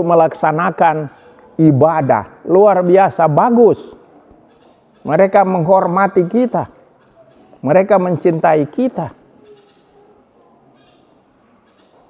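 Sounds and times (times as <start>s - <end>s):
man speaking: 0.0s - 4.1s, 5.0s - 6.8s, 7.6s - 9.2s.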